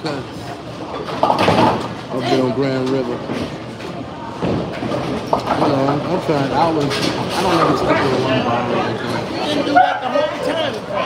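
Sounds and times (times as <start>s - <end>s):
people talking: 5.5s - 11.0s.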